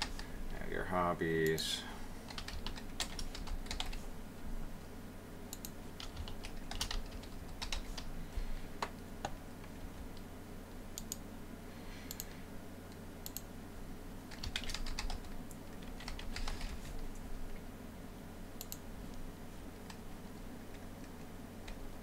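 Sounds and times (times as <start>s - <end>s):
typing on a keyboard: 2.3s - 4.0s, 5.6s - 8.1s, 14.3s - 17.0s.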